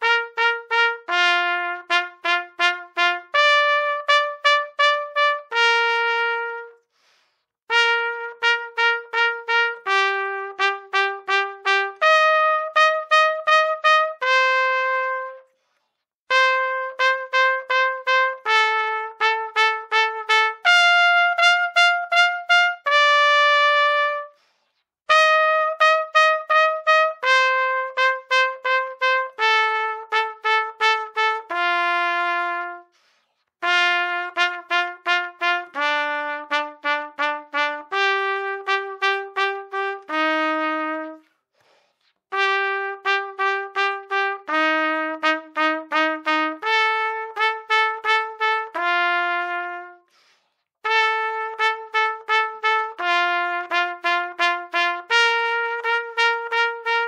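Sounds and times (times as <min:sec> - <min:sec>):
trumpet double tonguing: 0:00.0 - 0:06.8, 0:07.7 - 0:15.5, 0:16.3 - 0:24.4, 0:25.1 - 0:32.9, 0:33.6 - 0:41.3, 0:42.3 - 0:50.2, 0:50.8 - 0:57.0.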